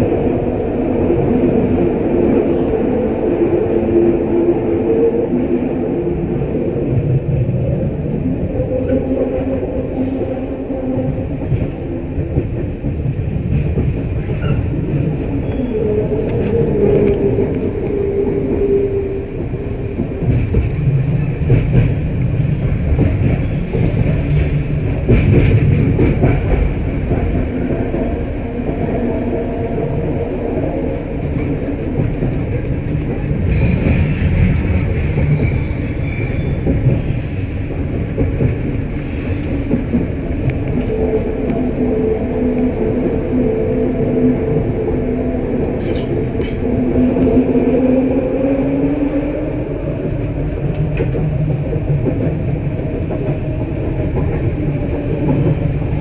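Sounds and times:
wheel and rail rumble: 0.0s - 56.0s.

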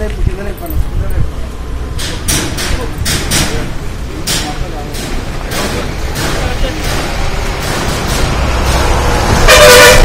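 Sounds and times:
loud horn blast: 8.9s - 10.0s.

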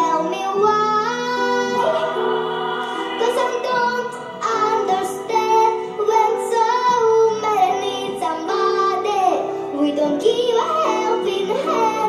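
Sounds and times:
girl singing: 0.0s - 12.0s
pop backing track: 0.0s - 12.0s.

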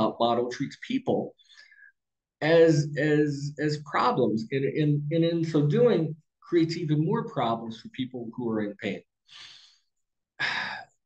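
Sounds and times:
man sighing: 10.4s - 10.9s.

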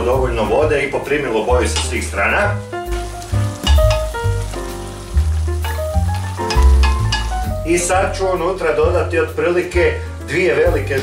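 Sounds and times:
background music with bass: 0.0s - 11.0s
meat and onion sizzling: 0.0s - 11.0s.

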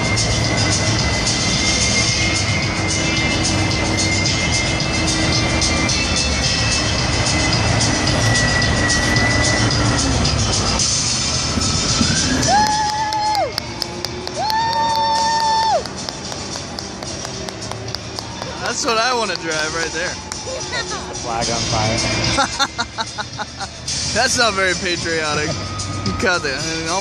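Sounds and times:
crowd noise: 0.0s - 27.0s
music over public address: 0.0s - 27.0s.

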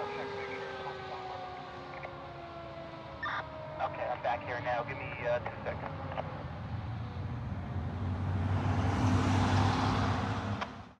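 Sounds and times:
vehicles driving past: 0.0s - 11.0s.

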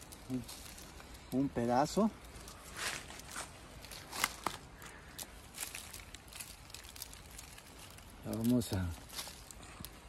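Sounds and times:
rustling dry leaves: 0.0s - 10.0s.

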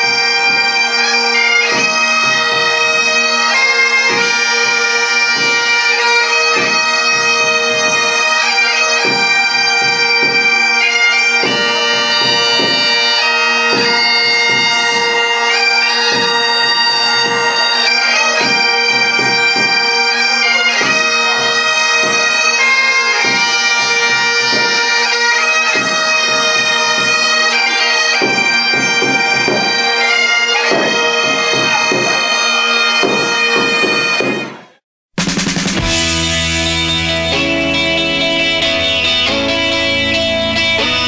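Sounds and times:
bagpipes playing a tune: 0.0s - 34.7s, 35.9s - 41.0s.

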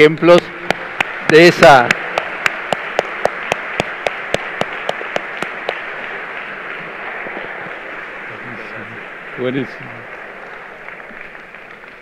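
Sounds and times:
audience applauding: 0.0s - 12.0s
sharp claps close by: 0.3s - 8.1s.

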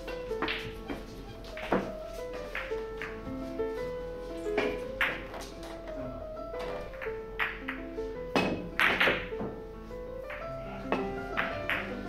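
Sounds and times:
billiard balls clacking: 0.0s - 12.0s
plucked melody music: 0.0s - 12.0s.

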